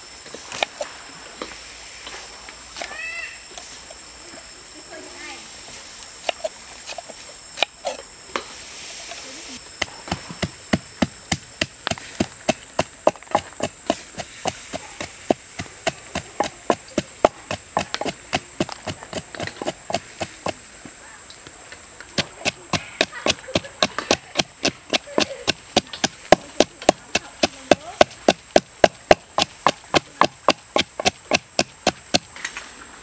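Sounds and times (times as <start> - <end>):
snails crackling on a grill: 9.5 - 20.8, 21.6 - 32.4.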